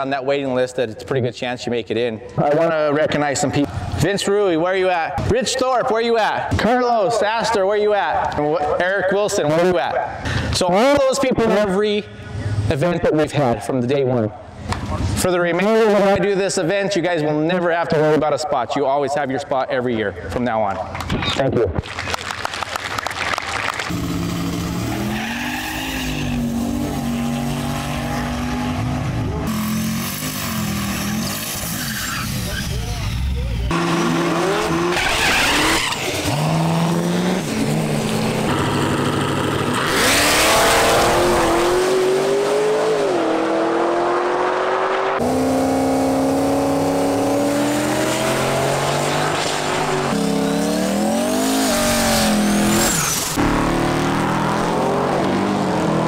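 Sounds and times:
car engines revving: 0:23.8 - 0:56.0
tire squeal: 0:24.7 - 0:28.3, 0:30.0 - 0:33.2, 0:33.8 - 0:36.5.

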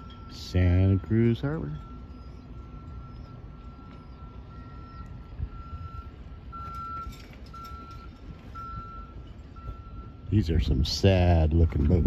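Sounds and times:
reversing alarm beeping: 0:00.0 - 0:11.7
low outdoor rumble: 0:00.0 - 0:12.0.

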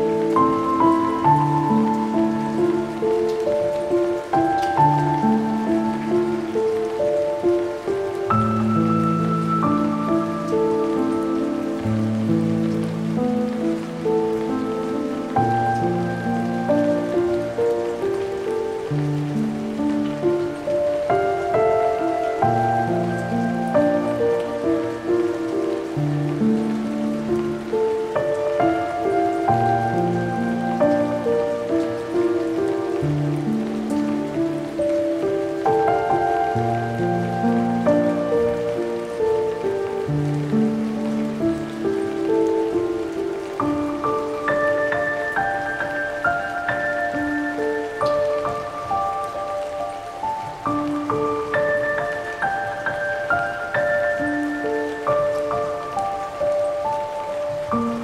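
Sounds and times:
slow solo piano: 0:00.0 - 0:58.0
steady rain: 0:00.0 - 0:58.0.

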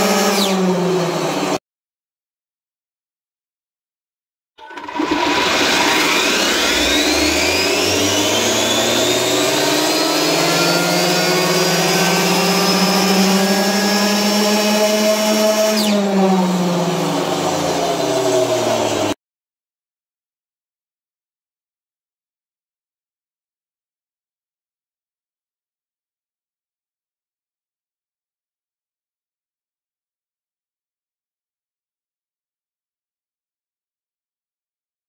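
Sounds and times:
electric motor whine: 0:04.6 - 0:19.2.

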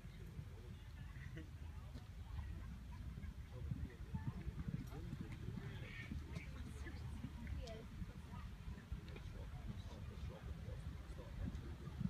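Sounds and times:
faint distant voices: 0:00.0 - 0:12.0.

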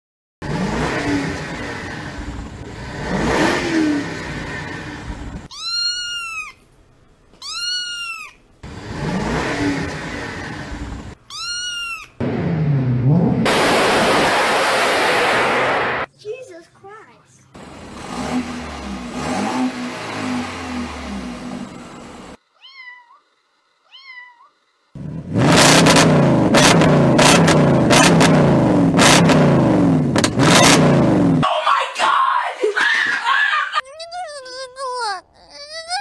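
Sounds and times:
car exhaust revving: 0:00.4 - 0:05.5, 0:08.6 - 0:11.2, 0:12.2 - 0:16.1, 0:17.6 - 0:22.4, 0:25.0 - 0:31.4
meow-like calls: 0:05.5 - 0:06.6, 0:07.4 - 0:08.4, 0:11.3 - 0:12.2, 0:22.6 - 0:23.2, 0:23.8 - 0:24.6
sharp exhaust cracks: 0:12.2 - 0:16.1, 0:25.0 - 0:31.4
child wailing: 0:32.1 - 0:36.0.

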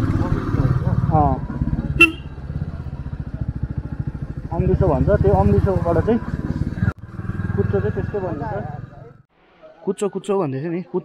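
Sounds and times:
motorcycle engine running: 0:00.0 - 0:09.2.

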